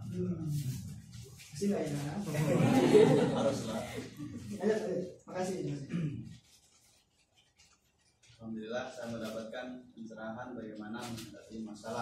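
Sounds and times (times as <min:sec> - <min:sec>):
person speaking: 0:00.0 - 0:07.0, 0:08.2 - 0:12.0
paper rustling: 0:06.4 - 0:09.7, 0:10.8 - 0:12.0.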